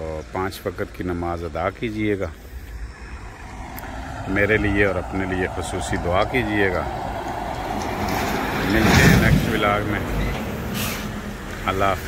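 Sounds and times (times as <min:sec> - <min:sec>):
truck driving past: 0:01.9 - 0:12.0.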